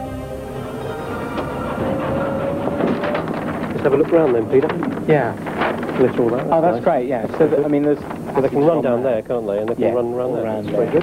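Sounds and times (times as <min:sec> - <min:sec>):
electric motor whine: 0:00.0 - 0:04.6
road noise: 0:00.0 - 0:08.4.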